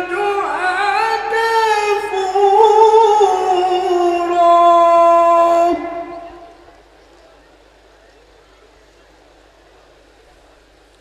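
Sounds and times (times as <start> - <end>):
man chanting through loudspeaker: 0.0 - 6.7.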